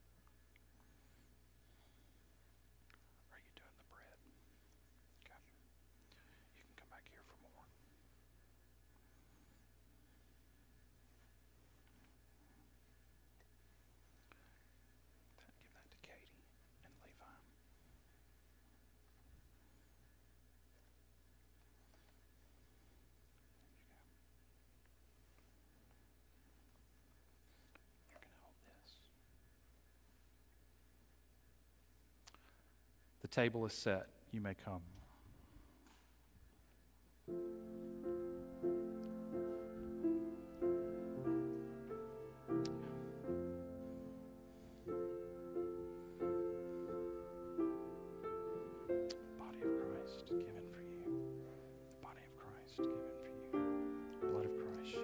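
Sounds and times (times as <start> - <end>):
faint whispered speech: 2.9 - 8.2, 15.2 - 18.0, 21.6 - 24.5, 27.6 - 29.2, 38.8 - 55.0.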